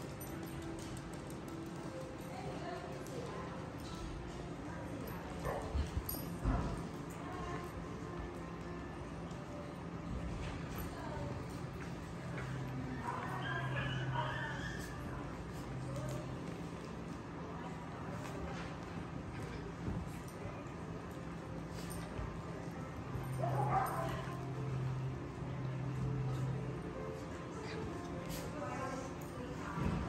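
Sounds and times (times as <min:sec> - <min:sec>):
dogs' paws clicking and scuffling: 0:00.0 - 0:30.0.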